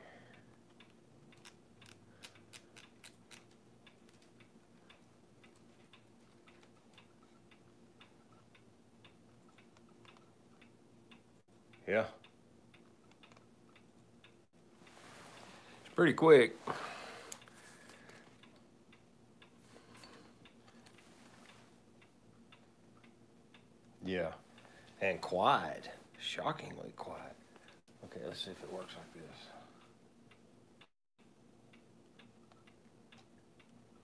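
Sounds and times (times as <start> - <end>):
wall clock ticking: 0.0 - 34.0.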